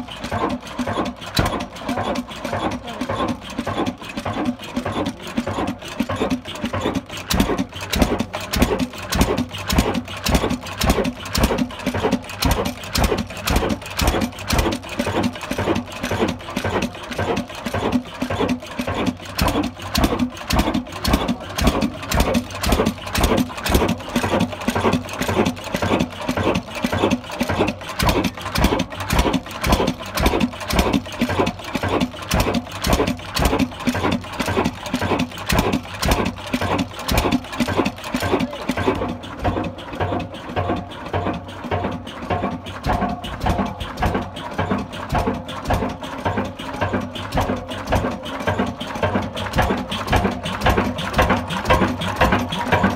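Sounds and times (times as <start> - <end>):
stationary diesel engine running: 0.0 - 52.9.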